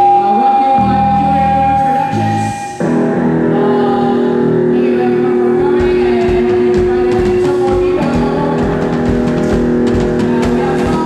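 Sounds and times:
distorted electric guitar: 0.0s - 11.0s
drum hits: 5.6s - 11.0s.

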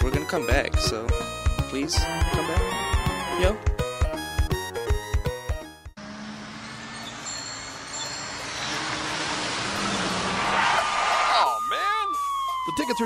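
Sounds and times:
bumper music with a beat: 0.0s - 6.0s, 11.6s - 13.0s
siren tone: 11.1s - 13.0s.

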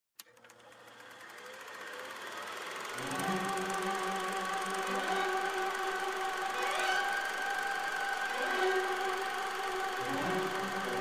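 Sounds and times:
drone: 1.2s - 11.0s.

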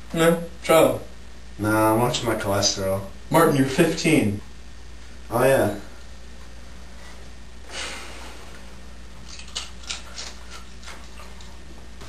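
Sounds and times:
low hum of room tone: 0.0s - 12.0s.

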